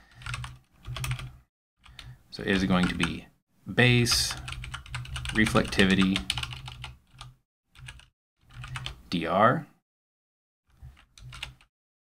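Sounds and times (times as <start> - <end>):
typing on computer keyboard: 0.1 - 1.3, 4.3 - 9.0, 11.0 - 11.7.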